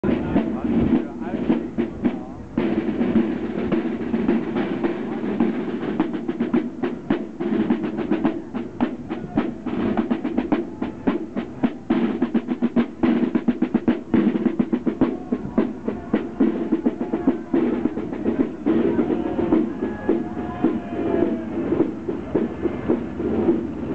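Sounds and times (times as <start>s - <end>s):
snare drums playing marching cadence: 0.0s - 23.9s.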